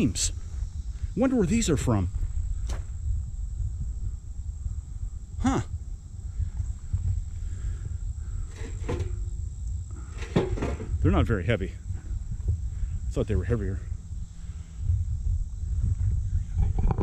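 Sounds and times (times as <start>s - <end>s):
high insect drone: 0.0s - 17.0s
low steady rumble: 0.0s - 17.0s
steel beams knocking and clanking: 10.2s - 10.9s.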